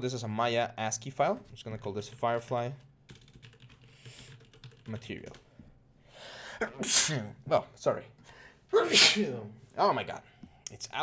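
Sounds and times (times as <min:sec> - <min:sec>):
typing on keyboard: 0:02.0 - 0:05.4.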